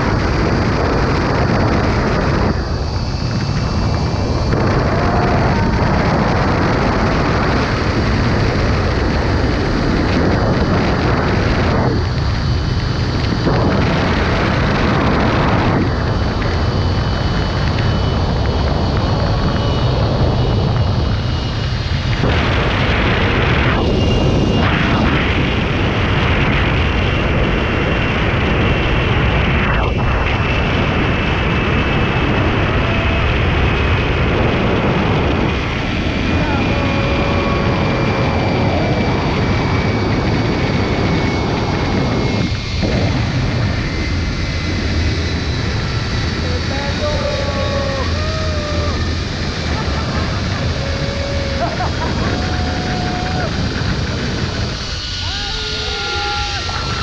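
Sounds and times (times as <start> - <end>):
wind buffeting microphone: 0.0 - 57.0
pulleys whining on cable: 46.4 - 57.0.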